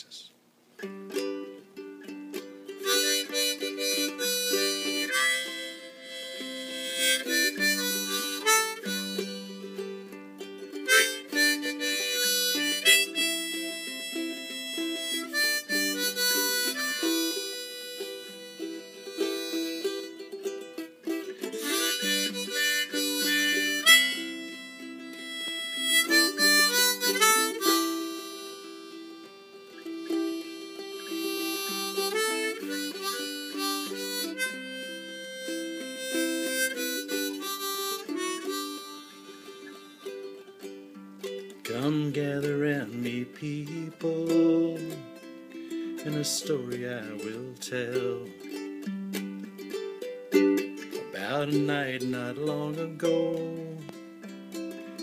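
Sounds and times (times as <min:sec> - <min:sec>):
harmonica playing folk melody: 0:00.8 - 0:55.0
strummed ukulele: 0:00.8 - 0:55.0.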